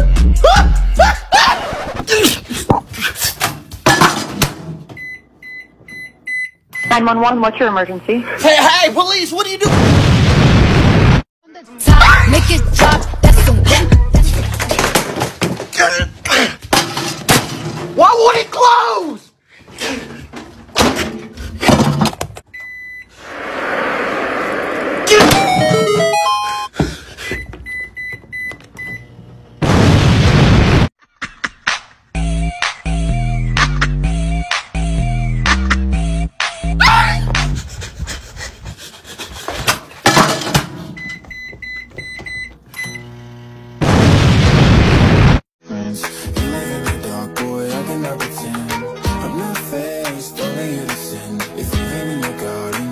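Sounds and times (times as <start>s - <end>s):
microwave keypad beeps: 5.0s - 7.0s, 22.5s - 23.1s, 25.4s - 26.7s, 27.4s - 29.1s, 41.0s - 43.1s
falling electronic notes: 25.1s - 26.7s
high beeps: 25.3s - 26.7s.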